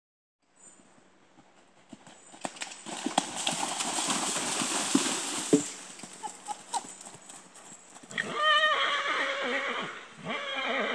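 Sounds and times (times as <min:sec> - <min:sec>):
hoofbeats thudding on grass: 0:01.4 - 0:08.4
horse splashing through water: 0:02.4 - 0:06.9
horse whinny: 0:08.1 - 0:10.9.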